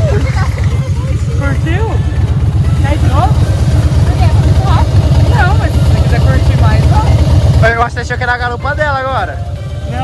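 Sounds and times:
voices and laughter: 0.0s - 6.2s
motorcycle engine idling: 0.0s - 10.0s.

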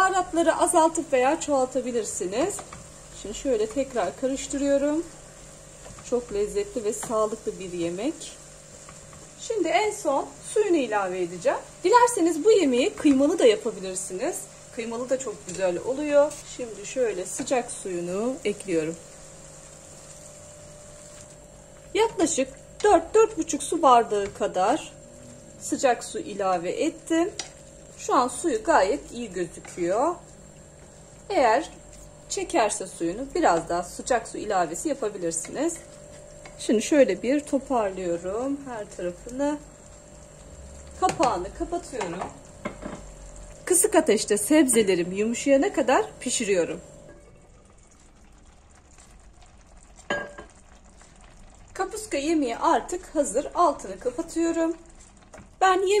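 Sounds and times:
stew crackling and bubbling: 0.1s - 56.0s
water poured into pan: 47.1s - 52.9s.

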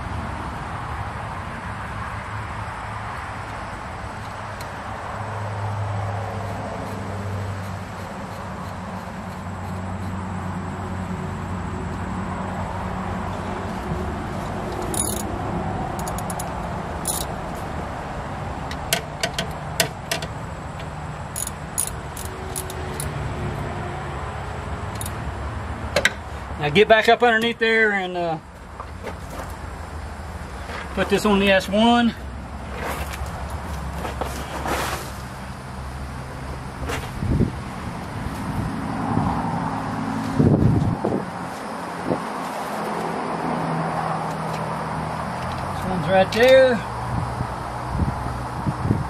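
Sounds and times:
steady background hum: 2.7s - 37.4s
metallic clicks of wrench: 14.8s - 15.3s, 16.0s - 17.3s, 21.4s - 23.1s, 25.0s - 25.2s.

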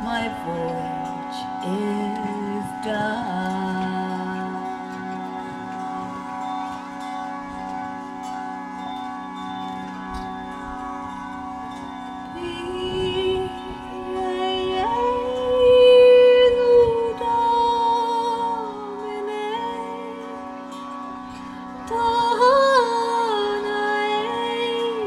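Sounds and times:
woman singing long notes: 0.0s - 5.7s, 12.3s - 25.0s
tanpura and harmonium drone: 0.0s - 25.0s.

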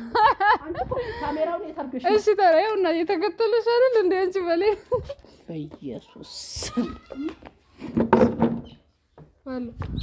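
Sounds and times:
woman speaking: 0.6s - 4.8s, 5.4s - 6.7s.

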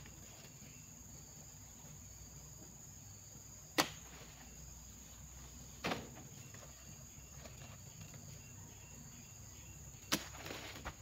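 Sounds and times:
high-pitched insect drone: 4.2s - 10.8s.

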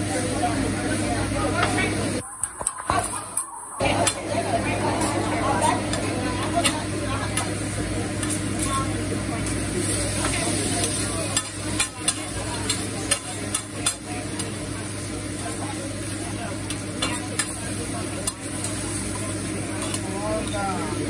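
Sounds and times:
food sizzling on a griddle: 0.0s - 21.0s.

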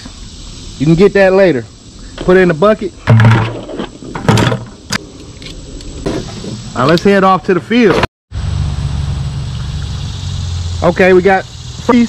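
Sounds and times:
tools clunking into bucket: 3.0s - 4.8s.

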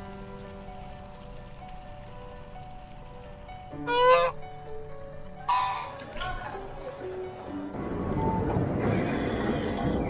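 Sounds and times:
geese honking: 3.8s - 4.7s, 5.3s - 6.8s.

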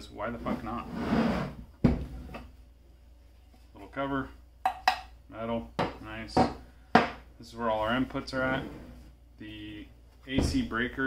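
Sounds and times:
cover scraping slide: 0.8s - 1.6s.

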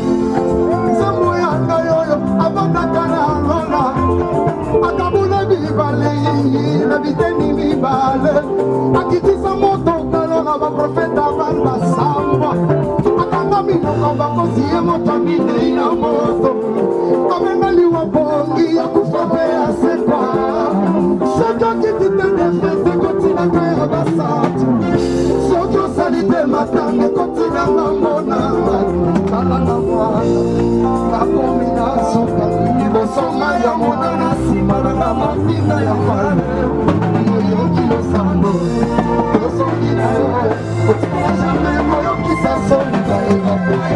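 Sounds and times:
guitar: 0.0s - 43.9s
person singing: 0.0s - 43.9s
steady bass line: 0.0s - 43.9s.

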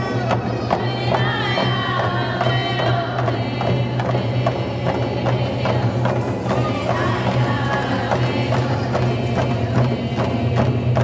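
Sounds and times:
big drum beating steadily: 0.0s - 11.0s
group singing: 0.0s - 11.0s.

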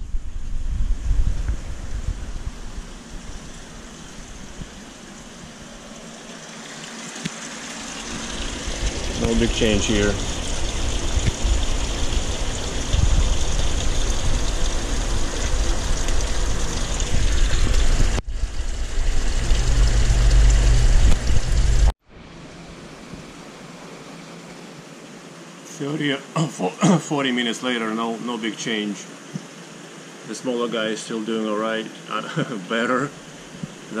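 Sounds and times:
deep rumble: 0.0s - 6.2s, 8.0s - 22.0s
water rushing through plumbing: 0.0s - 22.0s
steady hum: 0.0s - 34.0s.

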